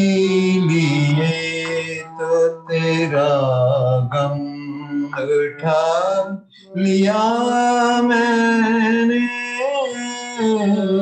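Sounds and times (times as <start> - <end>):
man singing long held notes: 0.0 - 11.0.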